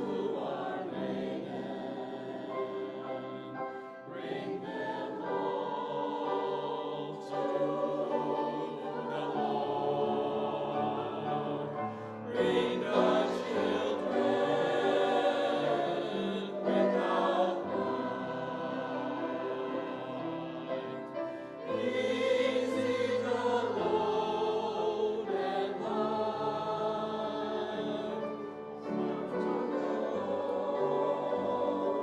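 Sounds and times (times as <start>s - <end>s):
church choir singing: 0.0s - 32.0s.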